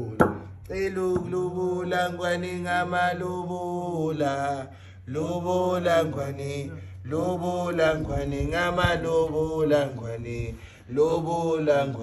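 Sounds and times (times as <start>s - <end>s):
person chanting slow song: 0.0s - 12.0s
steady low hum: 0.0s - 12.0s.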